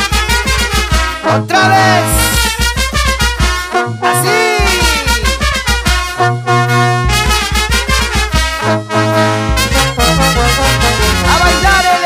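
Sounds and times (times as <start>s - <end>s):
steady drum beat: 0.0s - 8.9s
trumpets and trombones chords: 0.0s - 12.0s
tuba bass notes: 0.0s - 12.0s.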